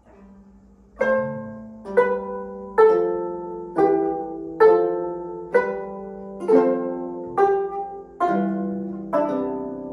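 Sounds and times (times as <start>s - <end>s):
plucked zither chords: 0.0s - 9.9s.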